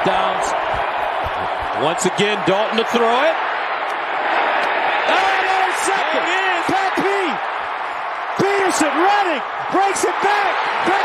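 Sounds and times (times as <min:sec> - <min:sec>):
excited commentator speaking: 0:00.0 - 0:03.4, 0:05.1 - 0:07.4, 0:08.3 - 0:11.0
stadium crowd roar: 0:00.0 - 0:11.0.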